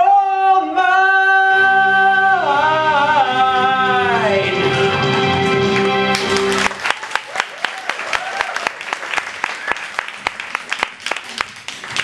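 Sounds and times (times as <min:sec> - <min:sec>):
low musical accompaniment: 0:01.0 - 0:06.7.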